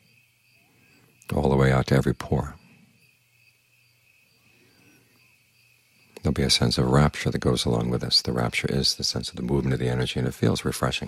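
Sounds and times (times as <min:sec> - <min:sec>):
faint pulsing high-pitched trill: 0:00.0 - 0:11.0.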